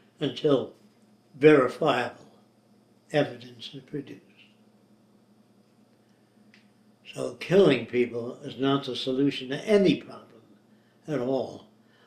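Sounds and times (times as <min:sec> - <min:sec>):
faint steady low hum: 0:00.0 - 0:12.0
small click: 0:05.7 - 0:06.7.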